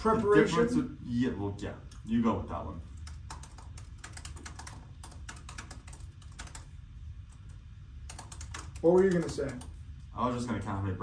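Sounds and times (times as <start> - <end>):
low steady hum: 0.0 - 11.0
laptop keyboard typing: 3.0 - 9.8.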